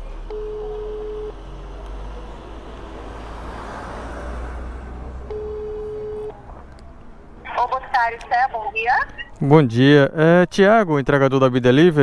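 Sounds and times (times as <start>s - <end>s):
street traffic rumble: 0.0s - 12.0s
telephone ringback tone: 0.3s - 1.4s, 5.3s - 6.4s.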